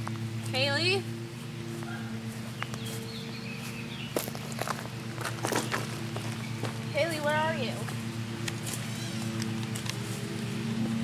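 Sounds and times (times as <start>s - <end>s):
steady low hum: 0.0s - 11.0s
footsteps on leaf litter: 0.2s - 11.0s.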